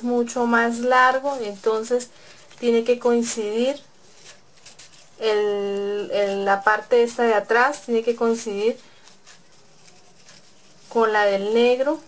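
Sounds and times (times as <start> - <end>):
fabric rustling and scraping: 0.0 - 12.0.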